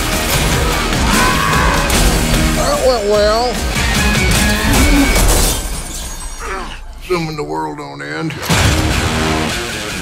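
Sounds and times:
loud trailer music: 0:00.0 - 0:05.8, 0:08.3 - 0:10.0
glass shattering: 0:04.3 - 0:06.6.

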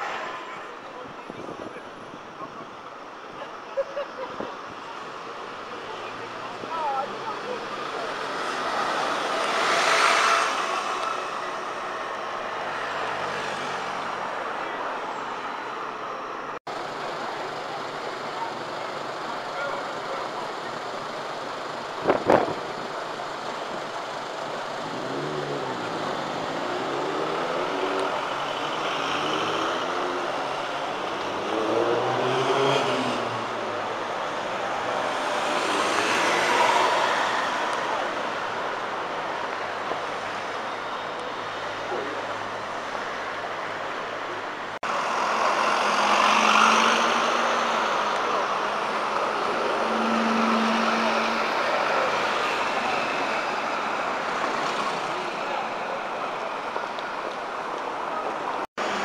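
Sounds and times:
bus passing: 0:00.0 - 0:59.0.

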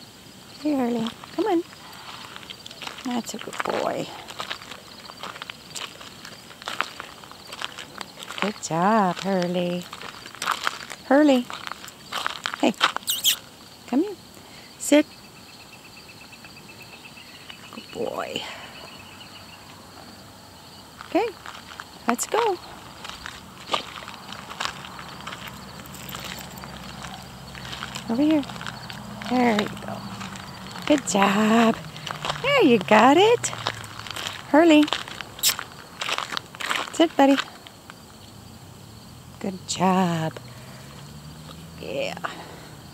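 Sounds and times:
footsteps on gravel: 0:00.8 - 0:13.4, 0:20.9 - 0:38.1
small paws on loose stones: 0:00.9 - 0:13.4, 0:20.9 - 0:38.1.

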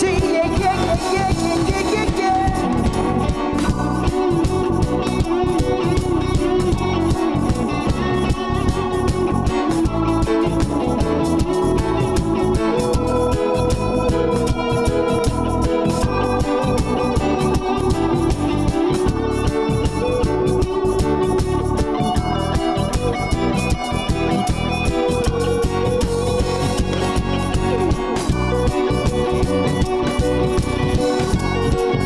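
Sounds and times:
drums keeping a steady beat: 0:00.0 - 0:32.0
electric bass: 0:00.0 - 0:32.0
held keyboard chords: 0:00.0 - 0:32.0.

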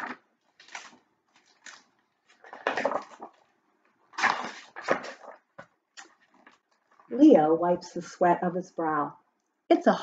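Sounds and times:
book pages turning: 0:00.0 - 0:06.9.

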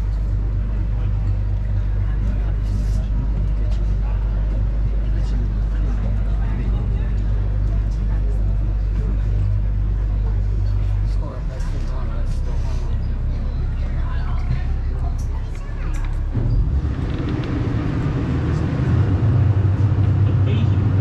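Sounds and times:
boat motor humming: 0:00.0 - 0:21.0
passengers talking: 0:00.0 - 0:21.0.

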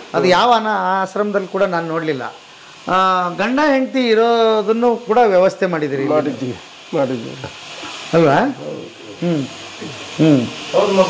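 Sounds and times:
man speaking: 0:00.0 - 0:07.5, 0:08.1 - 0:11.0
steady background hiss: 0:00.0 - 0:11.0.

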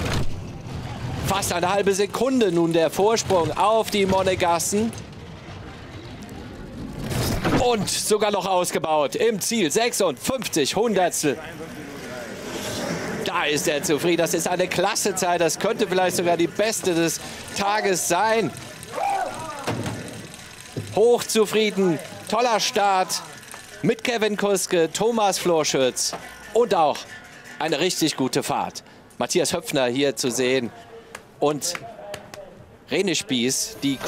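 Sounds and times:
bobsled runners on ice: 0:00.5 - 0:28.7.

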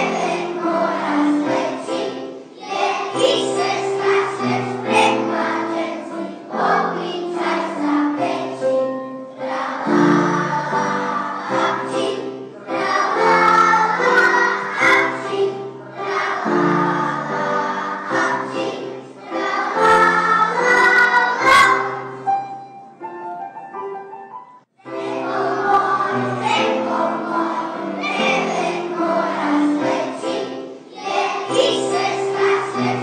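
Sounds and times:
children's choir singing: 0:00.0 - 0:23.1, 0:24.8 - 0:33.0.

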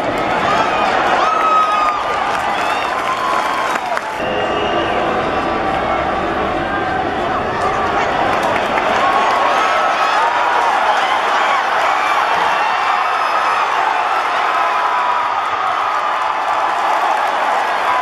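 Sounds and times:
stadium crowd cheering: 0:00.0 - 0:18.0.

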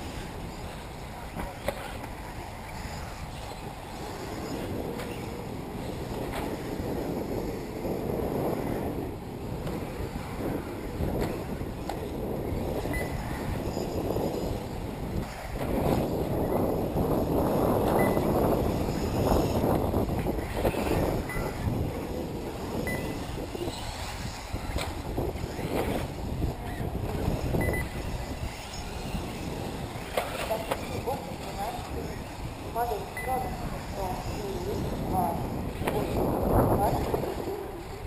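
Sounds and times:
electric rc buggies racing: 0:00.0 - 0:38.0
wind buffeting microphone: 0:00.0 - 0:38.0
short high beeps: 0:22.9 - 0:23.2, 0:27.6 - 0:27.9.

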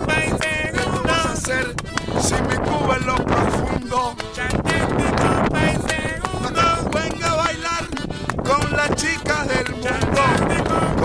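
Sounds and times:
accordion playing: 0:00.0 - 0:11.0.

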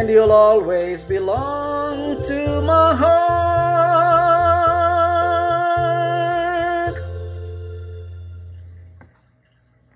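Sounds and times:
man singing with vibrato: 0:00.0 - 0:07.2
musical accompaniment: 0:00.0 - 0:09.0.

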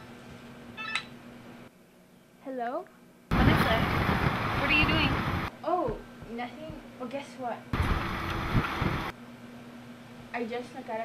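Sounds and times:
wind and road noise in car: 0:03.3 - 0:05.5, 0:07.8 - 0:09.1.

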